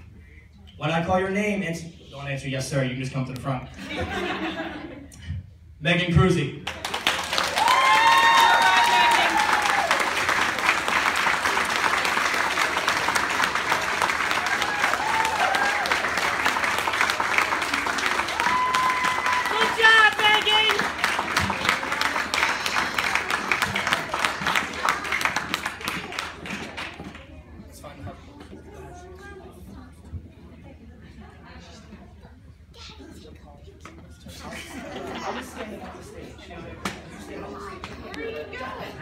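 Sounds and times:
audience applauding: 0:06.6 - 0:27.1
people cheering whoops: 0:07.4 - 0:10.2, 0:14.4 - 0:16.2, 0:18.0 - 0:19.8.

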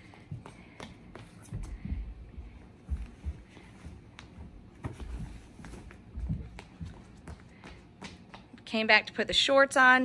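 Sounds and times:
running footsteps: 0:00.0 - 0:09.0.

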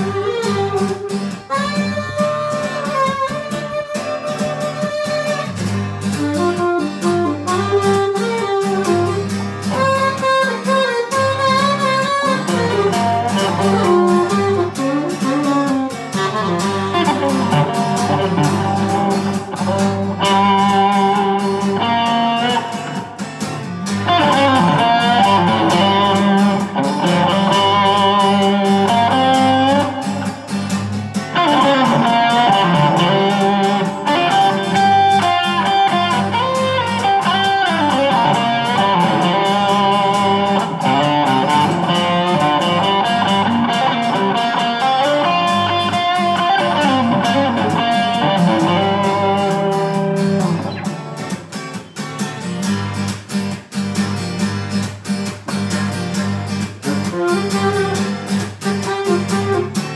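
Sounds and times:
beat: 0:00.0 - 0:59.9
electric guitar melody: 0:00.0 - 0:59.9.

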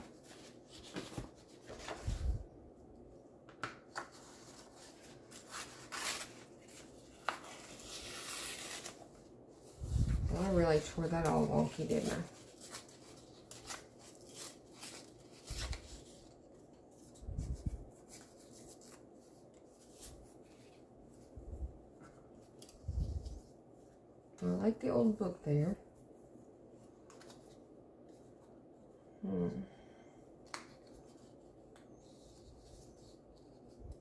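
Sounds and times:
paper rustling: 0:00.0 - 0:02.4, 0:03.5 - 0:21.3, 0:26.9 - 0:28.4.

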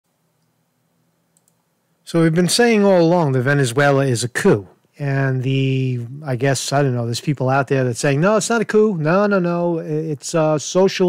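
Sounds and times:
faint clicks: 0:01.3 - 0:01.7.

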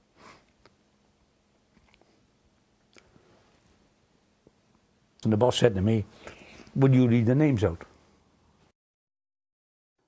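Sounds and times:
faint steady hum: 0:00.0 - 0:08.7.

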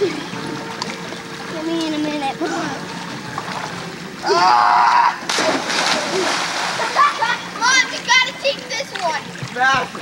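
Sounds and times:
water churning and sloshing: 0:00.0 - 0:10.0
big splash into pool: 0:05.1 - 0:07.4.

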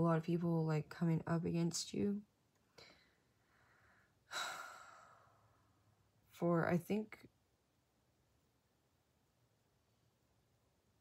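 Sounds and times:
woman sighing: 0:04.3 - 0:05.4.

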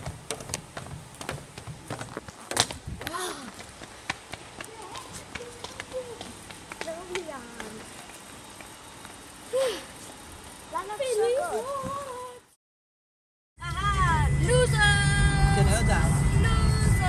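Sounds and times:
footsteps on hard floor: 0:00.0 - 0:04.2
background hum: 0:00.0 - 0:12.6.

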